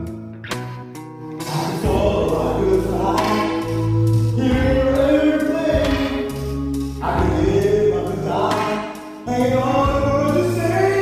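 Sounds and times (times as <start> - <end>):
pop ballad backing track: 0.0 - 11.0
person singing karaoke: 1.3 - 11.0.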